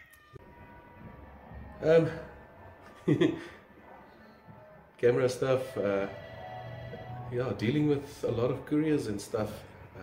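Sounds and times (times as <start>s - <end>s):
faint background music: 0.0s - 10.0s
man laughing: 2.9s - 3.6s.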